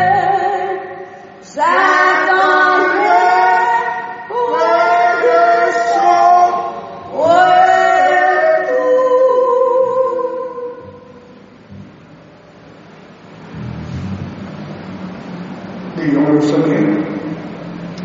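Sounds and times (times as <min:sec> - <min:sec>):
voices singing a hymn a cappella: 0:00.0 - 0:11.3
low background noise: 0:00.0 - 0:18.0.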